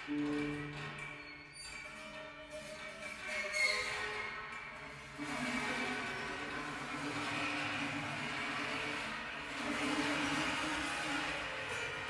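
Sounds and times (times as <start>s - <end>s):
rasping piano strings: 0.0s - 12.0s.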